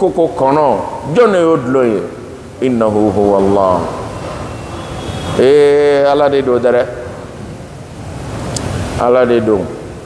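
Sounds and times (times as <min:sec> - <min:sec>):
microphone background hiss: 0:00.0 - 0:10.0.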